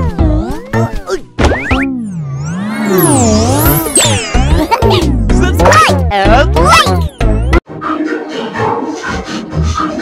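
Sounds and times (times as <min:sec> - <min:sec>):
warbling cartoon jingle: 0:02.1 - 0:06.0.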